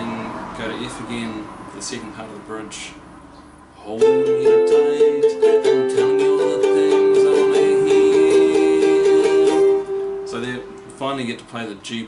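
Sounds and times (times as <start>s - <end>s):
ukulele strummed rapidly: 4.0s - 10.5s.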